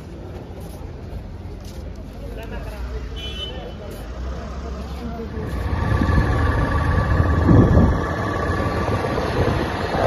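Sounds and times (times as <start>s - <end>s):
chatter of passers-by: 0.0s - 10.0s
low rumble: 5.4s - 10.0s.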